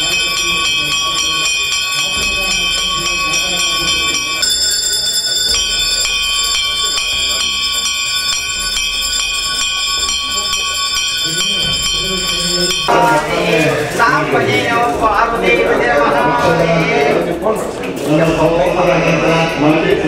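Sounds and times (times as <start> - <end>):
murmur of voices: 0.0 - 20.0
temple bells ringing rapidly: 0.0 - 20.0.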